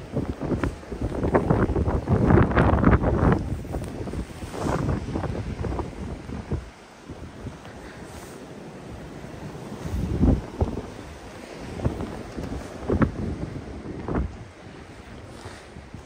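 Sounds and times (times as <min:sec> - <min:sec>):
blizzard wind buffeting microphone: 0:00.0 - 0:16.0.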